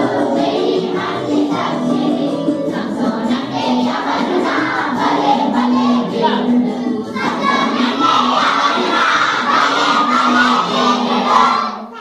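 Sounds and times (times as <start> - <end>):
children singing loudly in unison: 0.0 - 12.0.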